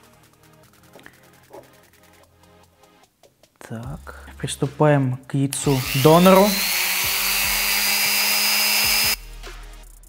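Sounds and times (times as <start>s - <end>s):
rotary tool whining: 5.6s - 9.2s.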